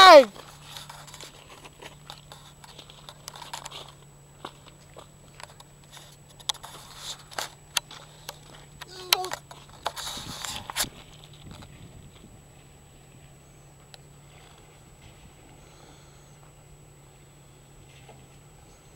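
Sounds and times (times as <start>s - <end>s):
low steady hum: 0.0s - 18.9s
footsteps on gravel: 0.1s - 8.8s.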